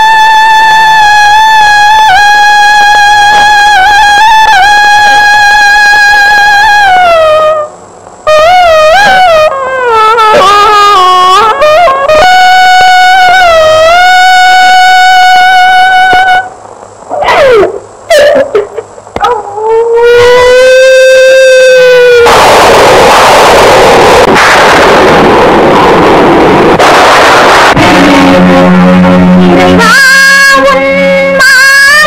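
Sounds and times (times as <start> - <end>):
loud rushing noise: 22.4 - 30.2.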